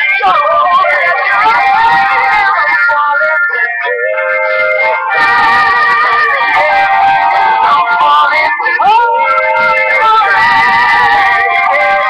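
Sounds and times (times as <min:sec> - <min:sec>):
pop song with singing: 0:00.0 - 0:12.0.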